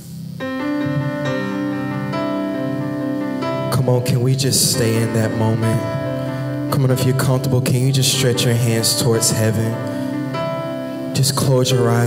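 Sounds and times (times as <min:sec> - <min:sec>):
keyboard playing sustained chords: 0:00.2 - 0:12.0.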